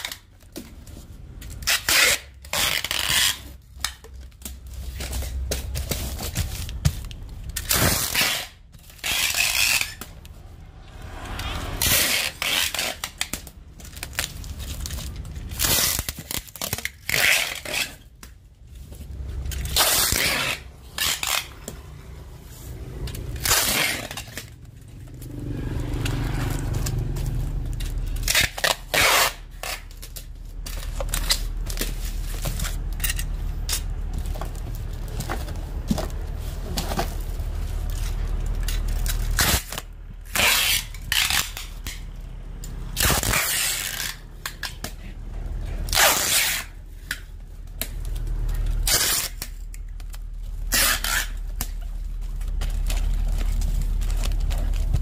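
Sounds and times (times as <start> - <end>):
packing tape ripping off roll: 0.0 - 10.4, 11.1 - 18.4, 19.1 - 21.9, 22.5 - 24.6, 25.5 - 55.0
tape crackling on basket: 1.3 - 55.0.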